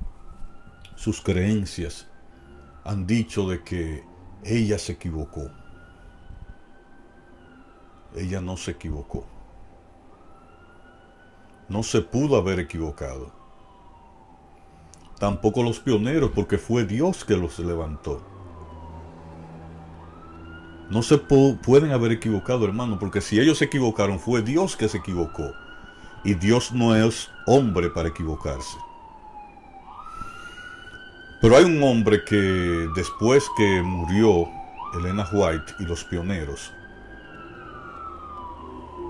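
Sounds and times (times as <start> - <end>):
distant siren wailing: 0.0 - 39.0.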